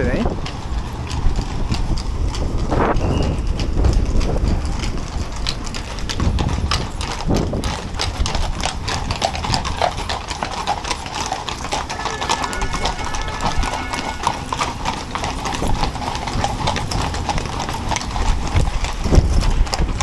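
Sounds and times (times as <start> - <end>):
horse hooves on cobblestones: 0.0 - 20.0.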